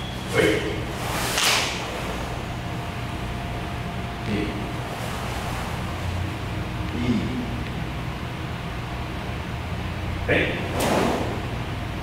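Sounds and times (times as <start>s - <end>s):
steady low hum: 0.0s - 12.0s
swish of uniforms: 0.3s - 2.4s.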